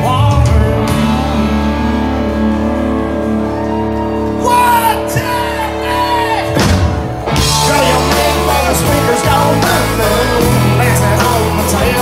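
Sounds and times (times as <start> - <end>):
electric guitar: 0.0 - 12.0
live band playing: 0.0 - 12.0.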